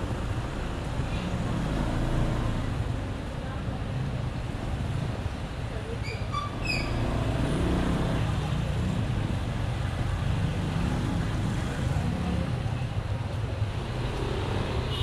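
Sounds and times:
road and wind noise: 0.0 - 15.0
surrounding traffic: 0.0 - 15.0.

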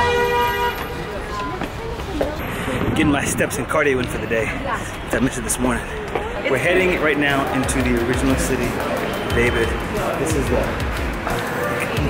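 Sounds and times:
vehicle horn: 0.0 - 1.0
street noise: 0.0 - 12.0
people talking: 0.8 - 12.0.

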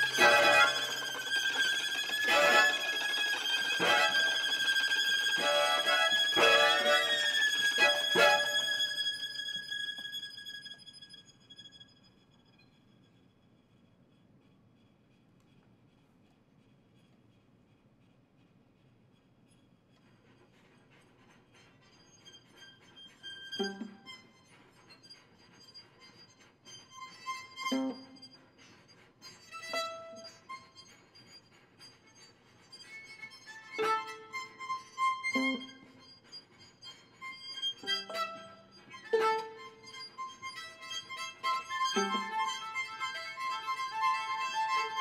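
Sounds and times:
string quartet playing: 0.0 - 10.7, 37.6 - 45.0.

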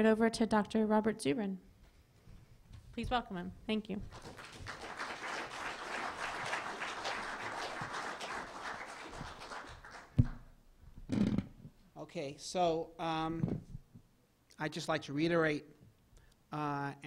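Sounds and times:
audience applauding: 4.1 - 10.5.

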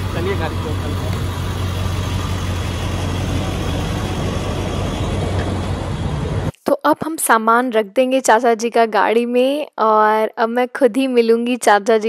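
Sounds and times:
constant low hum: 0.0 - 6.5
idling vehicle engines and traffic: 0.0 - 6.5.

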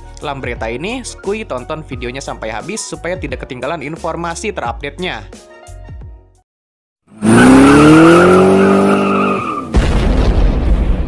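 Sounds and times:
engine revving: 7.1 - 9.4
tyre squeal: 7.4 - 9.7.

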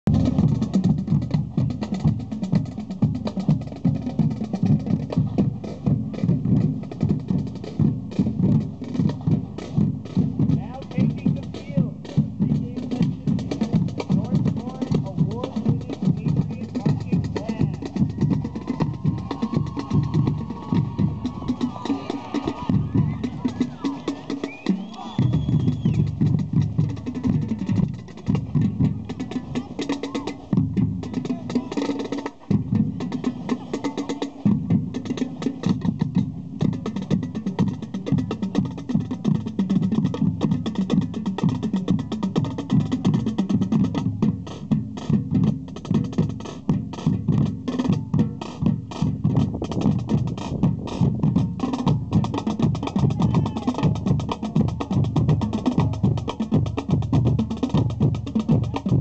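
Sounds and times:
marching drumline cadence: 0.1 - 59.0.

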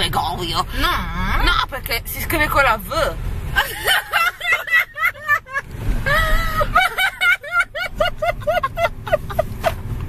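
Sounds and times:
car cabin rumble: 0.0 - 10.0
woman laughing hard: 3.6 - 9.8.

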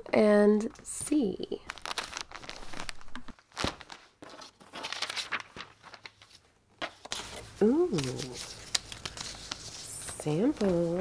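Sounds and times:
cardboard packaging rustling: 1.5 - 11.0.

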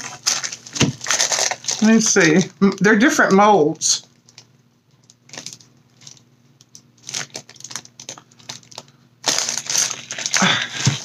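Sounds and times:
packaging crinkling and rustling: 0.0 - 2.5, 4.0 - 11.0.

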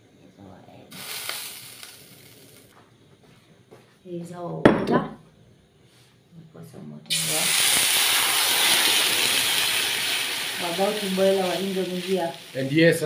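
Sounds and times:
water sizzling in hot pan: 0.9 - 2.7, 7.1 - 13.0.

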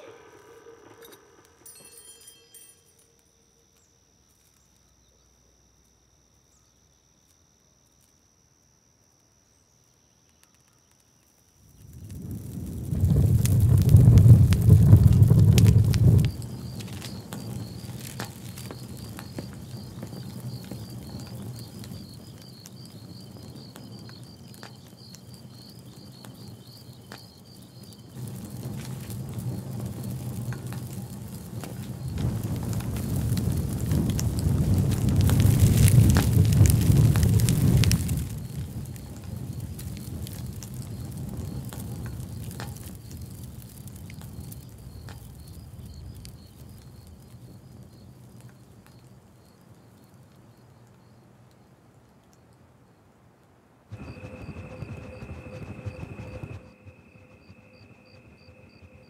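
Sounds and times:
faint high pulsing chirr: 0.0 - 11.9, 53.9 - 59.0
fire crackling and rushing: 10.0 - 52.6, 53.8 - 59.0.

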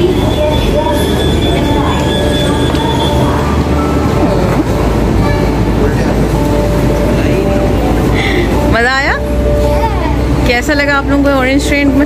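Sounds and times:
high whine: 0.0 - 12.0
metro train din: 0.0 - 12.0
people's voices: 0.0 - 12.0.

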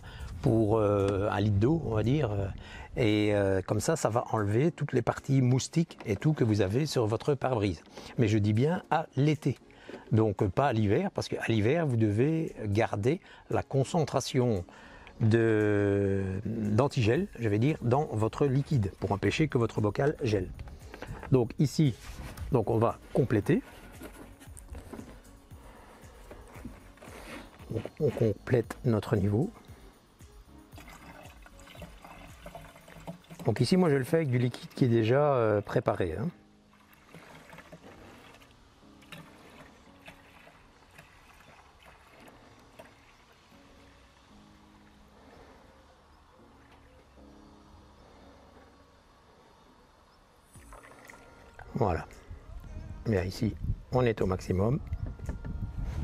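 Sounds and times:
faint background music: 0.0 - 56.0
plastic jug clicking and rustling: 5.6 - 6.6, 22.2 - 25.3, 30.8 - 34.9, 36.9 - 43.0
man's voice: 51.6 - 54.9.

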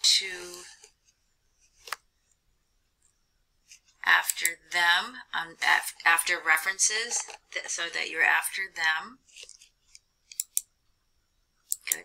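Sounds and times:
computer mouse clicks: 9.4 - 10.7, 11.6 - 12.0.

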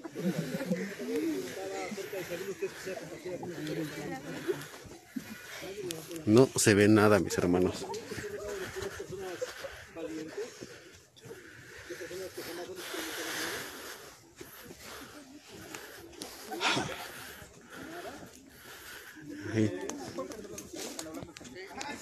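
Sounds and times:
group talking quietly: 0.0 - 22.0.

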